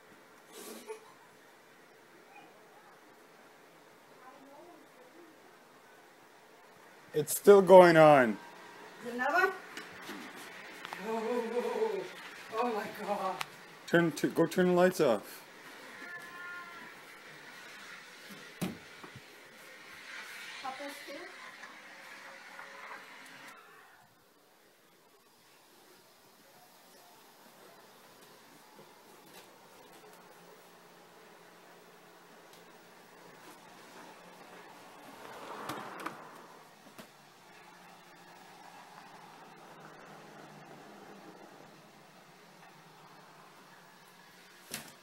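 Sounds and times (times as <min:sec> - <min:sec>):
faint room hiss: 0:00.0 - 0:45.0.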